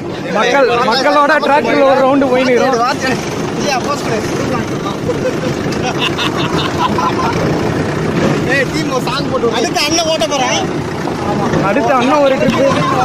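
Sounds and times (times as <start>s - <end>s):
men's voices: 0.0s - 13.0s
tractor engine running: 0.0s - 13.0s.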